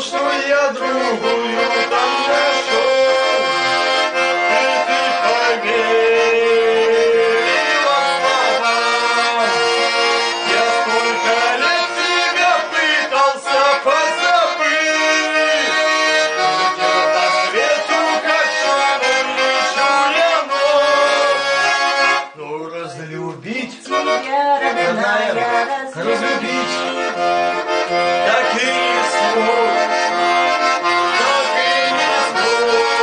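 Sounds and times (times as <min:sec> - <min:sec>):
button accordion folk melody: 0:00.0 - 0:33.0.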